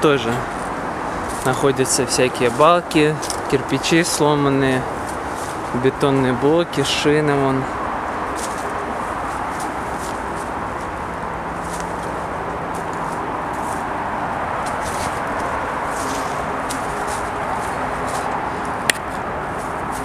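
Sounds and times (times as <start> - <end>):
distant traffic roar: 0.0 - 20.0
footsteps crunching on dry leaves: 0.4 - 6.3, 8.1 - 20.0.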